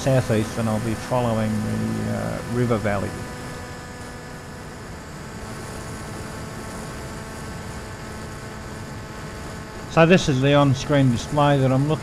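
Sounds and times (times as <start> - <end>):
electric motor and propeller drone: 0.0 - 12.0.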